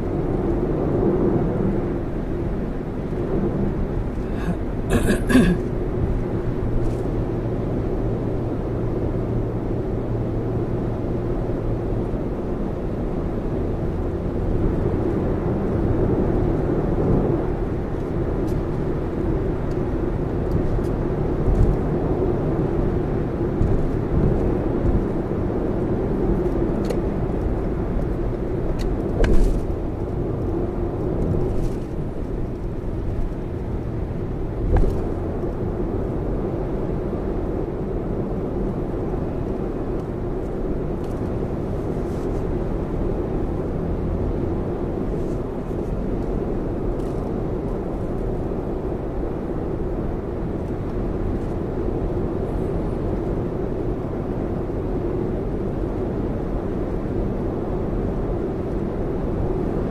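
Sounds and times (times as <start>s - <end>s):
road and tyre noise in car: 0.0s - 59.9s.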